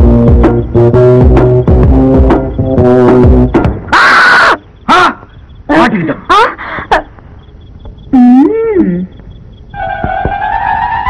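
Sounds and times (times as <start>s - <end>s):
string and brass film music: 9.8s - 11.0s.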